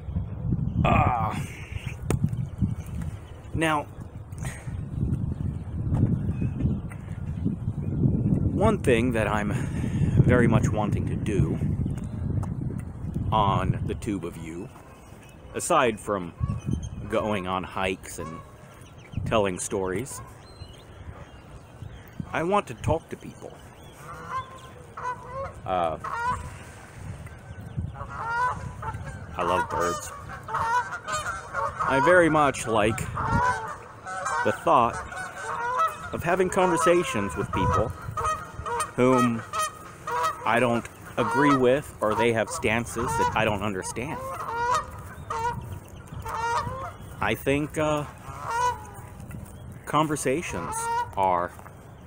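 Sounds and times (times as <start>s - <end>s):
wind rumble on microphone: 0.0s - 52.0s
goose honking: 17.2s - 18.6s, 24.0s - 26.8s, 27.9s - 49.1s, 50.2s - 51.4s.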